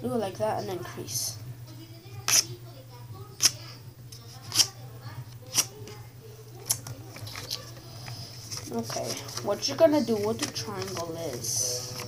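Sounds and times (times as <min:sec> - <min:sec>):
paper rustling and creasing: 0:07.0 - 0:12.0.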